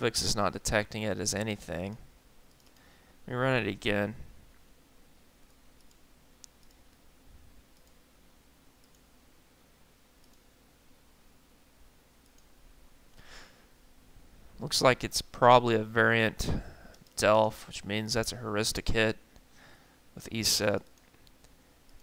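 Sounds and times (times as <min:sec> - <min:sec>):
faint computer mouse clicks: 0:02.5 - 0:02.9, 0:05.5 - 0:07.0, 0:08.8 - 0:09.1, 0:10.2 - 0:10.5, 0:12.2 - 0:12.5.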